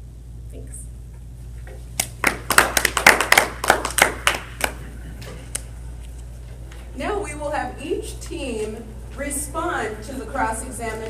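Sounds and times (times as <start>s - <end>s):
people clapping: 2.0s - 5.7s.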